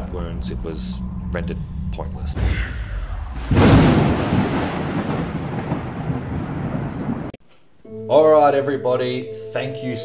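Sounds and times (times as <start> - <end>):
thunderclap: 0.0 - 7.4
rolling rain-like hiss: 2.3 - 7.4.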